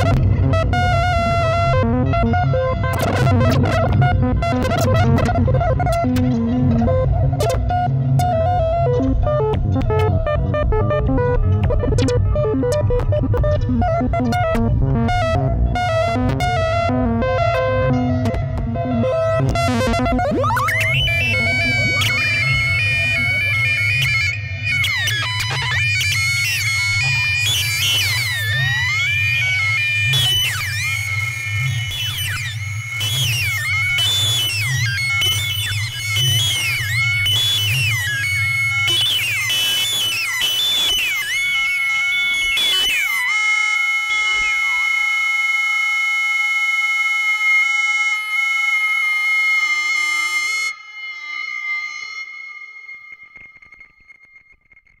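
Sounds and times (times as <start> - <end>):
low synth bass drone: 0.0 - 25.8
gliding synth tones: 12.2 - 24.7
steady high tones: 19.2 - 45.5.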